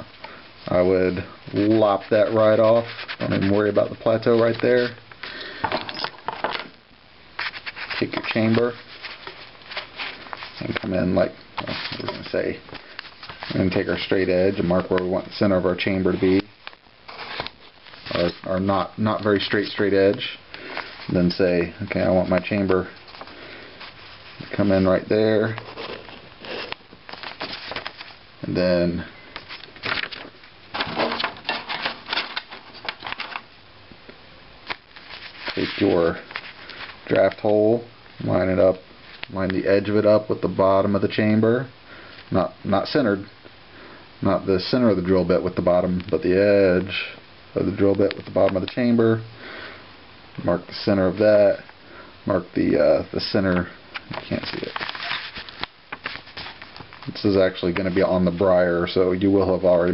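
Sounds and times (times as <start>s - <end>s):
scratchy rustles: 0.9s - 5.0s, 7.4s - 15.2s, 17.1s - 28.2s, 29.4s - 33.5s, 34.9s - 37.5s, 54.1s - 58.5s.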